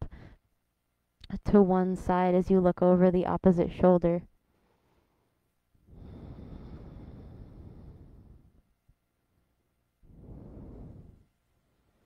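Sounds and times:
long exhale of breath: 5.9 - 8.6, 10.1 - 11.3.

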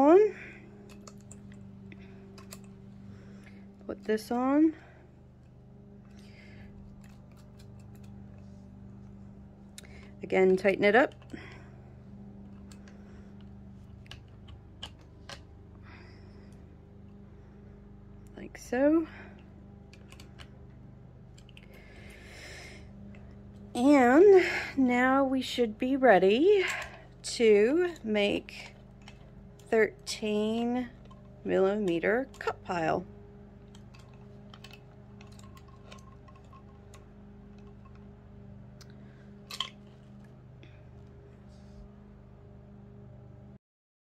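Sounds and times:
faint low hum: 0.0 - 43.6.

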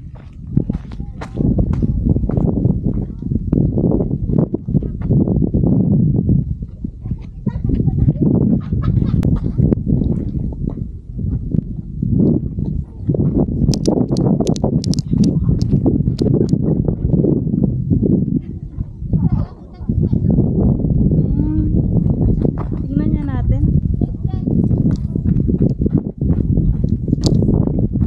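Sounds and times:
footsteps on gritty trail: 0.0 - 3.5, 9.3 - 16.6, 24.6 - 27.8
wind buffeting microphone: 0.0 - 28.0.

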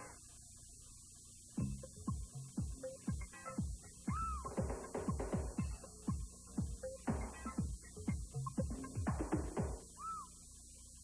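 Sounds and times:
jingle music with falling hits: 1.6 - 9.8
high-pitched tape squeal: 1.8 - 6.2.

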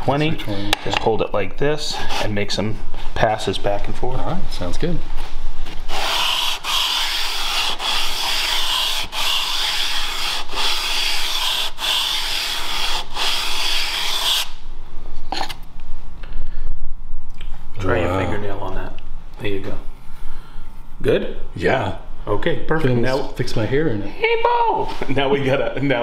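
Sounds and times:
steel scraper rubbing on sandpaper: 5.9 - 14.6.

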